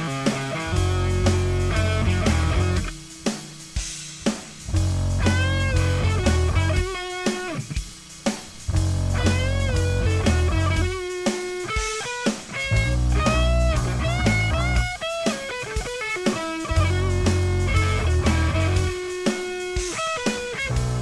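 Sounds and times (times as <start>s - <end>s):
lead guitar bending notes: 0.0s - 2.9s, 4.7s - 7.7s, 8.7s - 21.0s
heavy low bass: 0.7s - 2.9s, 4.7s - 7.0s, 8.7s - 11.0s, 12.7s - 14.9s, 16.6s - 19.0s, 20.7s - 21.0s.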